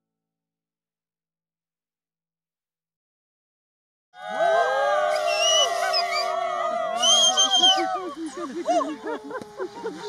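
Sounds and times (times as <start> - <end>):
crowd cheering in long whoops: 4.2 - 10.0.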